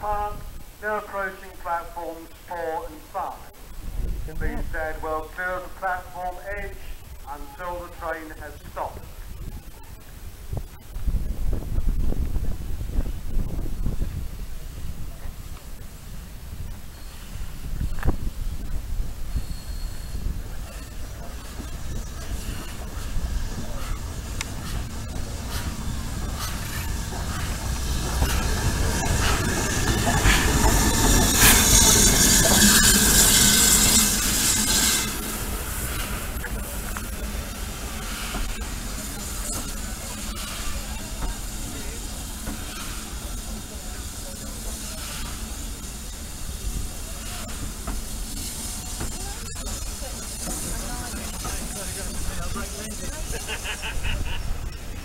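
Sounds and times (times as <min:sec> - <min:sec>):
loud hiss of escaping steam: 0:10.2 - 0:55.0
coaches rolling rumble: 0:20.2 - 0:55.0.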